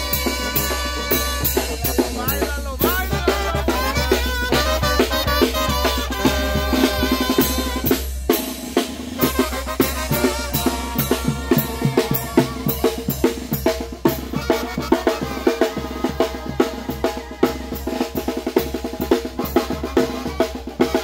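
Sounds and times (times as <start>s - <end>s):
brass band playing: 0.0s - 21.0s
snare and bass drum beating: 0.0s - 21.0s.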